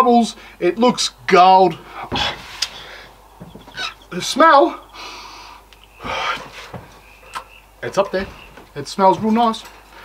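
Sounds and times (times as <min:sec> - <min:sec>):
man sniffing: 0:04.9 - 0:06.8.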